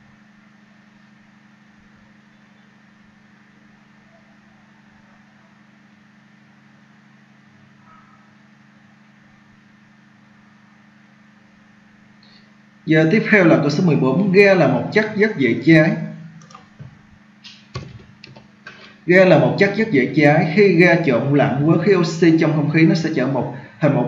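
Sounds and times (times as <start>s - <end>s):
low hum: 7.6s - 24.0s.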